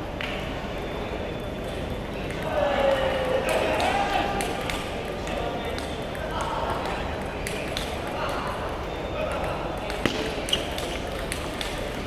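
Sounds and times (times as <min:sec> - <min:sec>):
murmur of voices echoing: 0:00.0 - 0:12.0.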